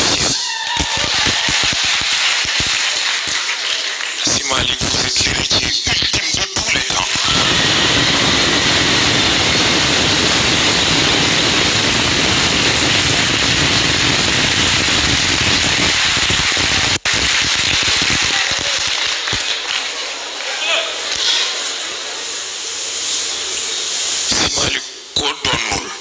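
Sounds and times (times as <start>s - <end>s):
audience applauding: 0.0s - 22.7s.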